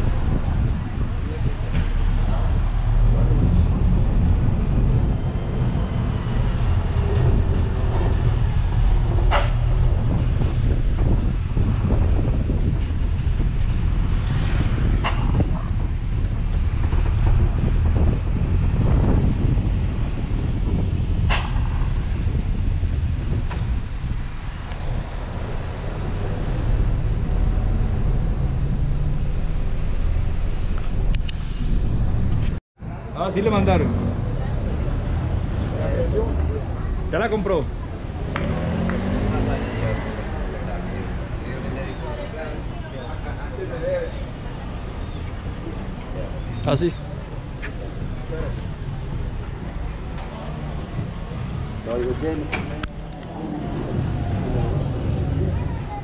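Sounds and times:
engine and road rumble: 0:00.0 - 0:56.0.

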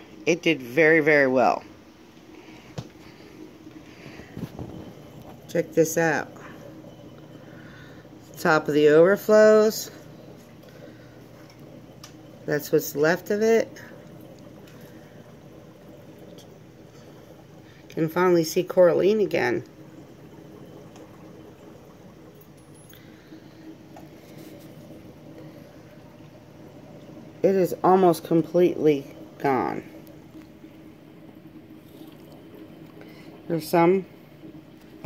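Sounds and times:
aquarium water circulating: 0:00.0 - 0:35.0
low pump drone: 0:00.0 - 0:35.0.

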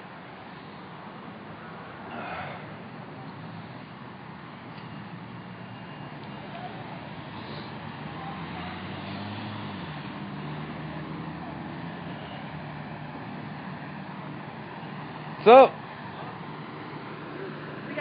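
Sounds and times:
street traffic: 0:00.0 - 0:18.0.

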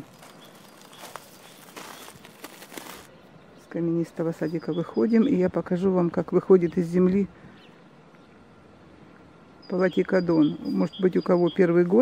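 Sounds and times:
footsteps on garden ground: 0:00.0 - 0:03.2.

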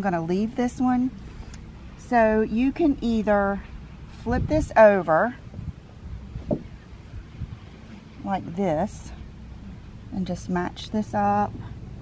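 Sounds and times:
wind rumbling on microphone: 0:00.5 - 0:12.0.

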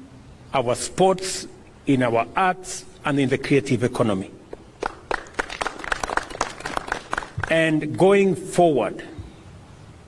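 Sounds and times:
small group clapping: 0:04.5 - 0:07.8.

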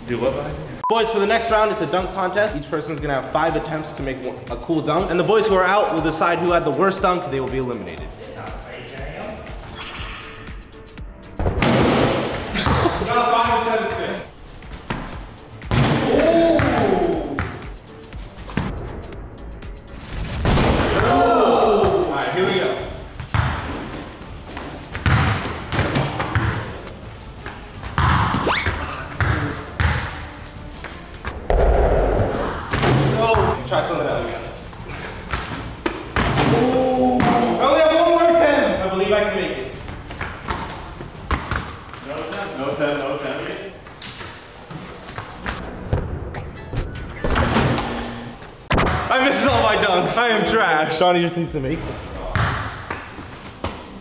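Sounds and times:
background music: 0:00.0 - 0:54.0
hoop rim and backboard slamming: 0:11.4 - 0:12.9
people laughing: 0:12.5 - 0:13.3
people shouting: 0:15.9 - 0:17.4, 0:20.9 - 0:22.2, 0:36.4 - 0:37.6.

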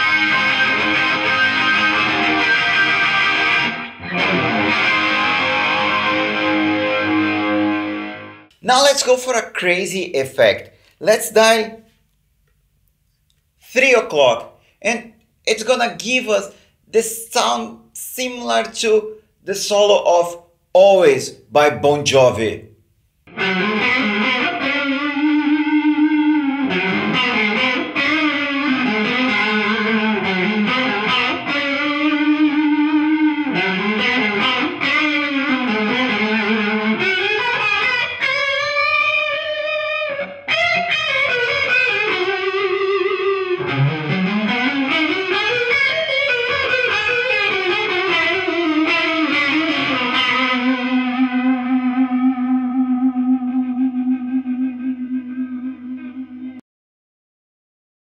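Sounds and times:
electric guitar lead with chorus: 0:00.0 - 0:08.6, 0:23.3 - 0:56.6.

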